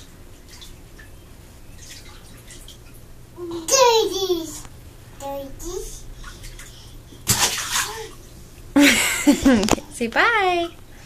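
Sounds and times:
toys splashing into bathwater: 6.2 - 8.1
laughter: 8.8 - 9.8.

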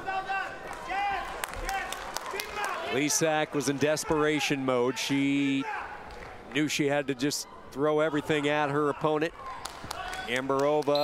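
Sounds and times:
large hall noise: 0.0 - 11.0.

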